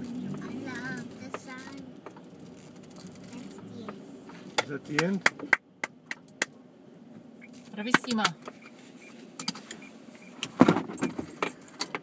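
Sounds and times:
car cabin noise: 0.0s - 12.0s
sharp clicks and rattles: 1.2s - 4.0s.

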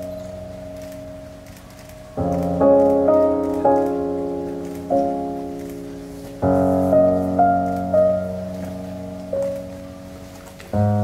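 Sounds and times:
slow piano music: 0.0s - 11.0s.

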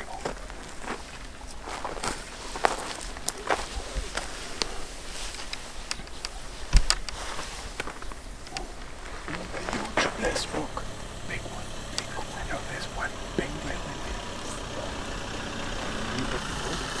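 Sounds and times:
footsteps crunching through dry grass: 0.0s - 17.0s.

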